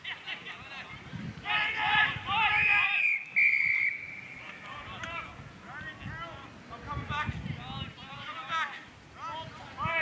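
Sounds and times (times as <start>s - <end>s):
voices shouting: 1.4s - 5.4s
whistle blast: 2.6s - 4.4s.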